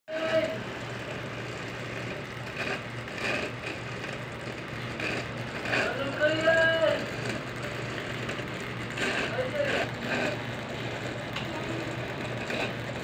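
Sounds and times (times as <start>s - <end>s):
low engine-like hum: 0.1s - 13.0s.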